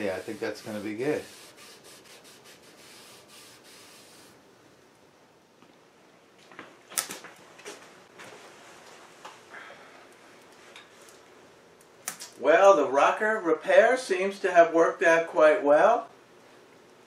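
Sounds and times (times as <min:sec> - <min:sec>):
rag wiping wood: 0:00.0 - 0:04.4.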